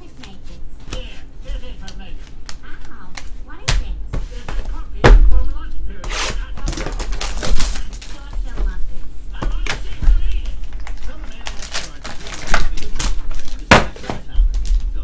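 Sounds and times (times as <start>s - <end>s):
plastic wrap crinkling: 6.4s - 8.5s, 9.6s - 15.0s.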